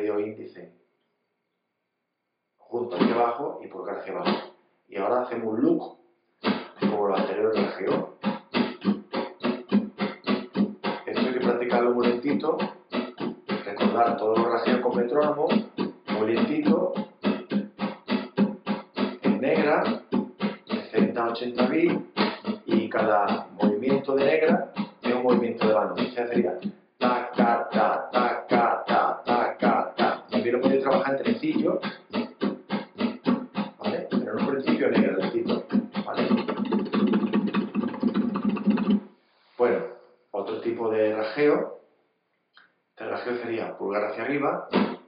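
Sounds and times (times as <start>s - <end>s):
flamenco guitar strumming: 2.9s - 3.4s, 4.0s - 4.6s, 6.4s - 39.1s, 44.6s - 45.0s.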